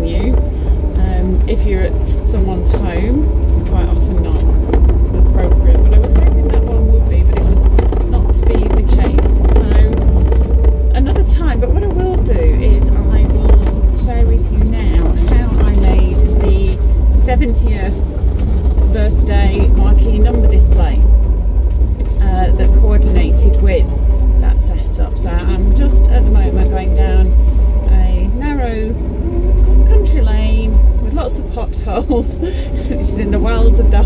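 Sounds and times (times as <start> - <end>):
woman talking: 0.0 - 0.4, 1.0 - 10.2, 10.9 - 18.2, 18.8 - 21.1, 22.0 - 29.0, 29.8 - 34.0
engine and road rumble: 0.0 - 34.0.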